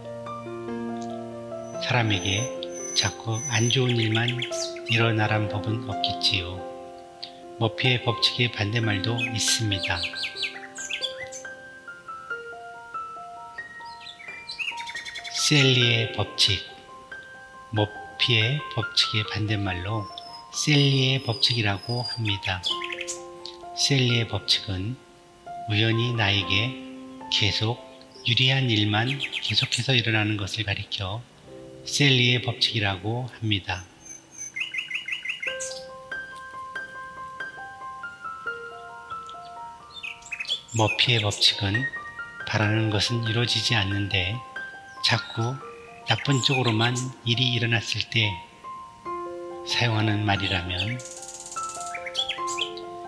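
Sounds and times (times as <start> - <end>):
soft music of held notes: 0.0 - 53.0
small birds chirping: 0.9 - 25.1, 25.7 - 48.9, 49.7 - 53.0.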